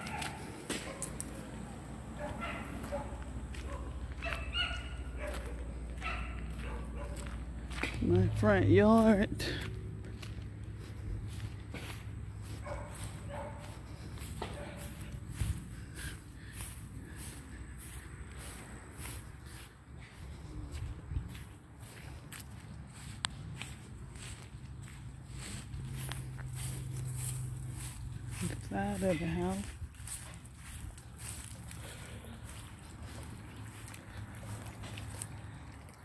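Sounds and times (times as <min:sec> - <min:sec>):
handheld camera rustle: 0:00.0 - 0:01.6, 0:10.2 - 0:35.6
footsteps on grass: 0:00.0 - 0:36.0.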